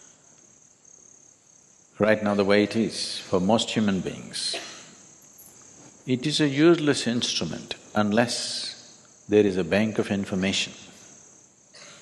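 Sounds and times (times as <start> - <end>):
low hiss: 0.0 - 12.0
high-pitched insect trilling: 5.0 - 5.8.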